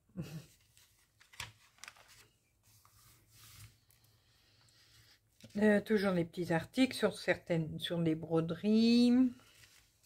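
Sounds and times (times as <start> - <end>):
paper rustling: 0.5 - 4.1, 9.3 - 10.0
magazine page flicking: 1.2 - 2.3.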